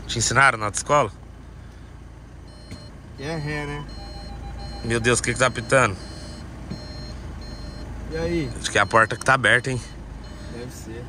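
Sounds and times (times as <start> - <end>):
car engine idling hum: 0.0 - 11.0
high steady warning beep: 2.4 - 10.9.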